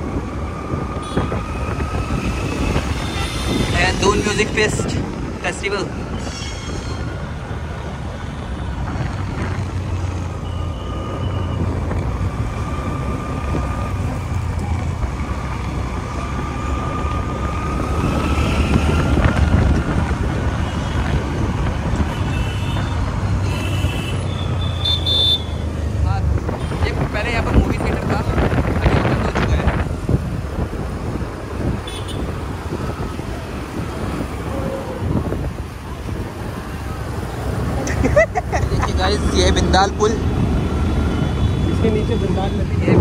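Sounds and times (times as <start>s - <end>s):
low rumble of ride and road: 0.0s - 43.0s
vehicle horn toots: 22.1s - 25.6s, 31.8s - 32.3s.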